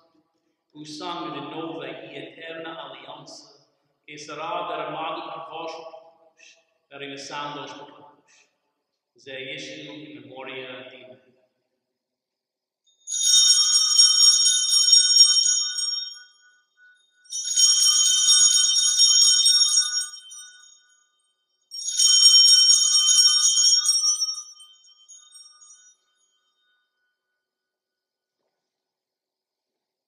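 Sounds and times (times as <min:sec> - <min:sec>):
altar bells ringing: 0:13.1 - 0:27.4.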